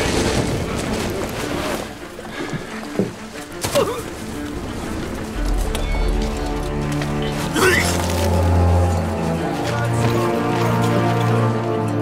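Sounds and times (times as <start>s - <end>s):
orchestral music with held notes: 0.0s - 12.0s.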